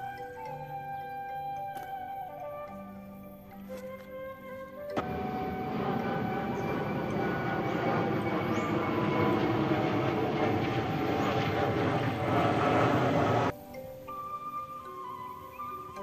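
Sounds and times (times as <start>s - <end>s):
jet engine roar: 5.0s - 13.5s.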